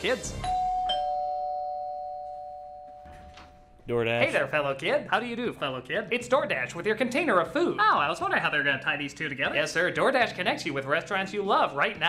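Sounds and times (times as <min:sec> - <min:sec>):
two-note doorbell chime: 0:00.4 - 0:03.6.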